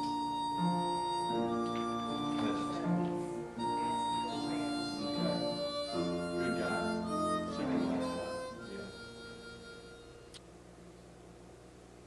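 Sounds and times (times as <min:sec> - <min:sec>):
harmonica held notes: 0:00.0 - 0:10.4.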